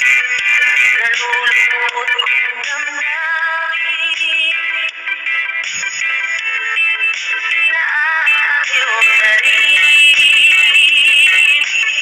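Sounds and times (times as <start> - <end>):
music with synthetic vocals: 0.0 - 12.0.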